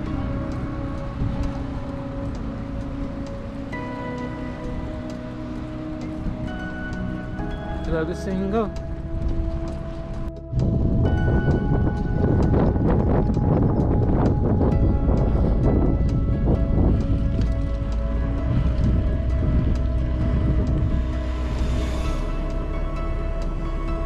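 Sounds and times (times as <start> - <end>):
background music: 0.0 - 24.0
wind noise on microphone: 0.0 - 24.0.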